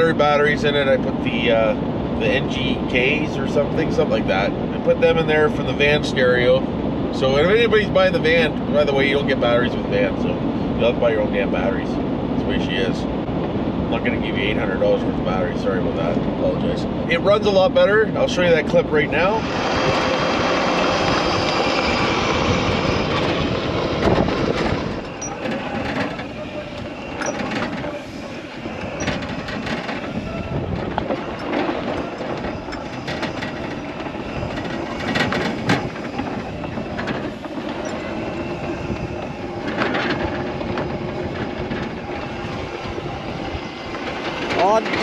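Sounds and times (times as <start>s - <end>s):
steady rushing noise: 0.0s - 45.0s
golf cart parts rattling: 24.0s - 28.0s, 28.9s - 38.2s, 38.9s - 43.1s.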